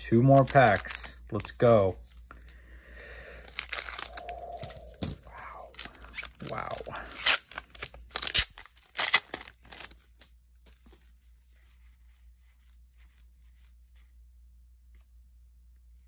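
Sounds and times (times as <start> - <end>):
cards rustling: 0.1 - 2.7, 3.3 - 14.0
foil wrapper tearing and crinkling: 0.3 - 1.9, 3.4 - 5.0, 5.6 - 10.3.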